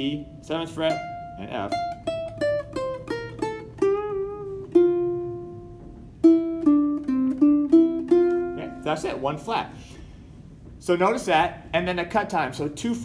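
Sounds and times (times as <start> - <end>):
ukulele picked notes: 0.0 - 9.8.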